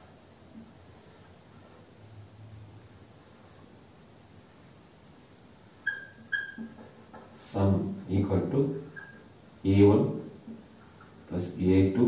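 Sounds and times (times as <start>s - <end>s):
marker squeaking on whiteboard: 5.8s - 7.4s, 8.8s - 9.4s, 10.5s - 11.3s.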